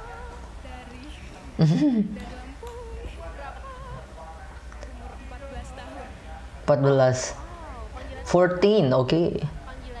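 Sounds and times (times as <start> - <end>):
girl singing with vibrato: 0.0 - 4.1.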